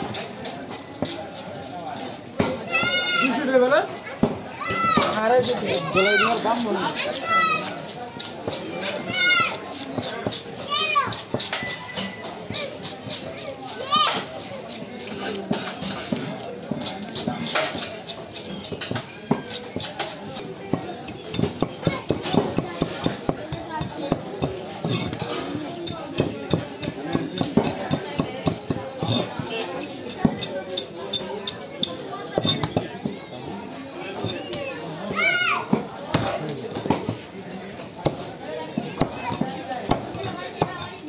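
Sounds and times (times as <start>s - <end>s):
knife scraping fish scales: 0.0s - 1.5s, 5.0s - 23.3s, 24.8s - 32.7s
background voices of people: 0.0s - 41.0s.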